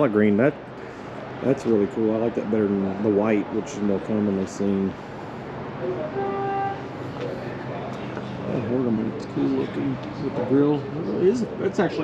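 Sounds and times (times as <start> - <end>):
low background murmur: 0.0 - 12.0
horn-like tone: 5.8 - 6.9.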